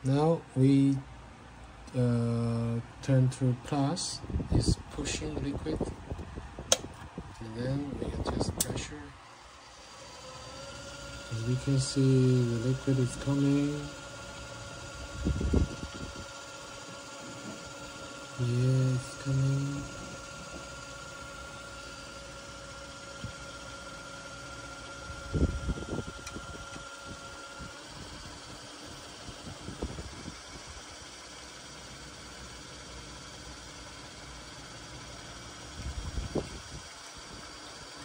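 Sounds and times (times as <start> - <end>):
pump humming and whining: 0.0 - 38.0.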